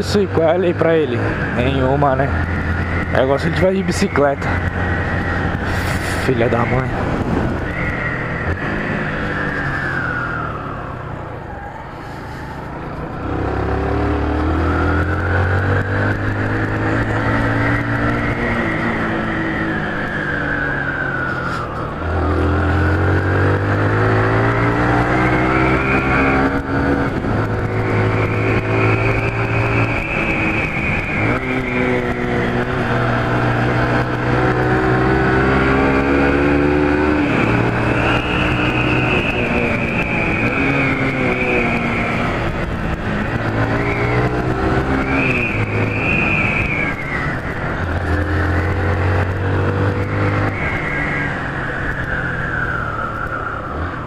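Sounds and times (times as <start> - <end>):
motorcycle engine accelerating: 0.0 - 54.0.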